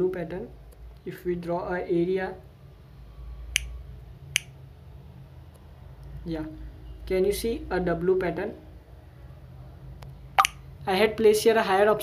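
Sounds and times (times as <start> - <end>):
low steady hum: 0.0 - 11.4.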